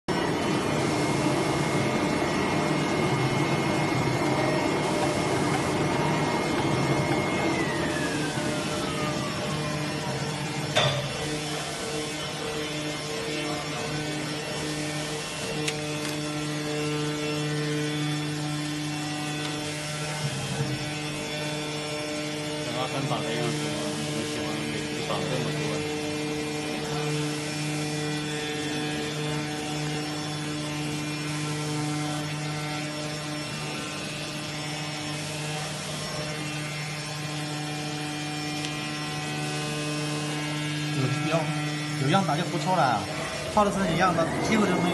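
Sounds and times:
cutting plotter motor hum: 0.1 - 44.9
high whine falling in pitch: 0.3 - 13.8.

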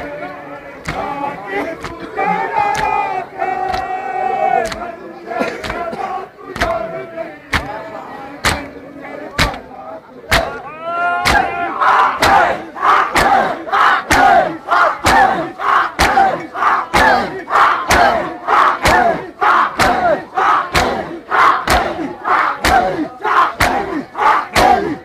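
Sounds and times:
crowd chanting: 0.0 - 25.0
hands slapping bare chests: 0.8 - 1.1, 1.8 - 2.0, 2.6 - 3.0, 3.6 - 3.9, 4.6 - 4.9, 5.6 - 5.8, 6.6 - 6.8, 7.5 - 7.8, 8.4 - 8.7, 9.4 - 9.6, 10.3 - 10.6, 11.2 - 11.5, 13.1 - 13.4, 14.1 - 14.4, 16.0 - 16.3, 19.8 - 20.1, 20.7 - 22.0, 22.6 - 23.0, 23.6 - 23.9.

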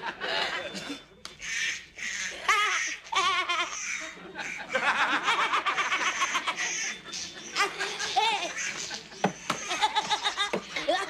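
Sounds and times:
woman laughing heartily: 2.3 - 11.0.

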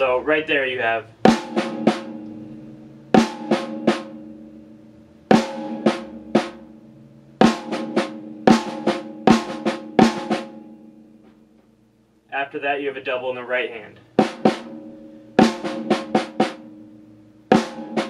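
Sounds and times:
snare drum strokes: 1.3 - 2.2, 5.3 - 6.6, 7.4 - 10.5, 14.2 - 14.8, 15.4 - 16.6.

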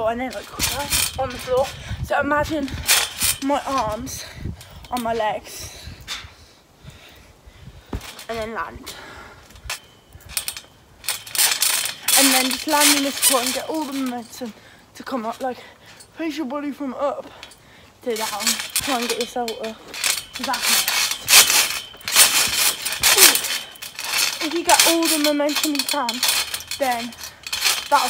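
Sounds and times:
trampoline thump: 0.1 - 4.1, 7.9 - 8.8, 9.6 - 14.3, 18.1 - 28.0
knocks and rattles: 9.6 - 14.3, 17.4 - 28.0.

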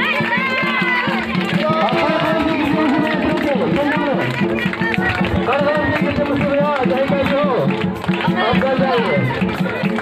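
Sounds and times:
quick steady drum beat: 0.0 - 10.0.

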